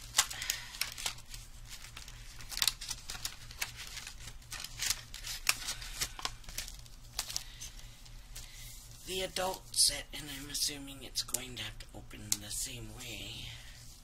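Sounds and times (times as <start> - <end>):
plastic packs crinkling: 0.0 - 9.8.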